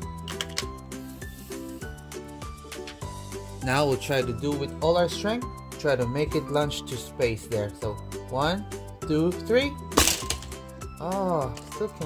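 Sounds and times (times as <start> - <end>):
light instrumental background music: 0.0 - 12.0.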